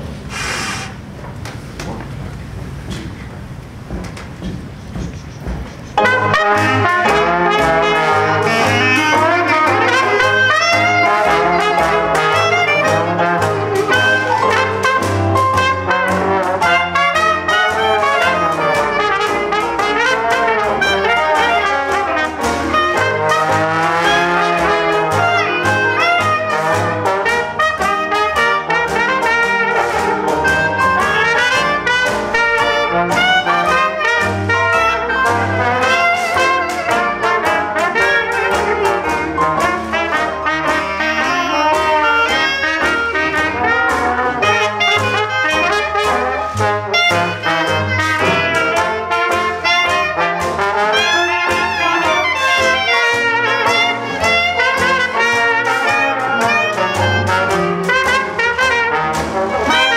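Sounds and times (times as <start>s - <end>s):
jazz band playing: 0.0s - 59.9s
clarinet: 5.0s - 59.9s
trombone: 5.9s - 59.9s.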